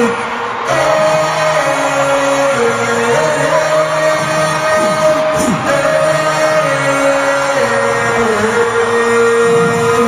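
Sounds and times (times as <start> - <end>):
live concert music: 0.0 - 10.0.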